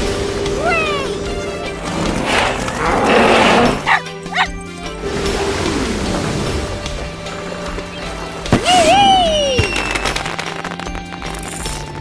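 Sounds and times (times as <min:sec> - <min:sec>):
background music with held tones: 0:00.0 - 0:12.0
cartoon dog bark: 0:03.7 - 0:04.6.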